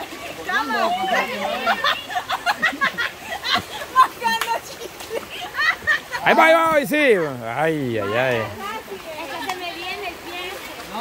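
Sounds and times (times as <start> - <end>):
creek rushing: 0.0 - 11.0
people talking and calling out: 0.0 - 11.0.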